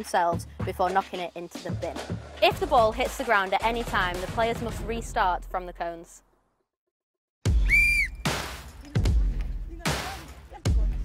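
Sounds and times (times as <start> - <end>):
music with heavy beat: 0.0 - 5.1, 7.5 - 11.0
whistle blast: 7.5 - 8.4.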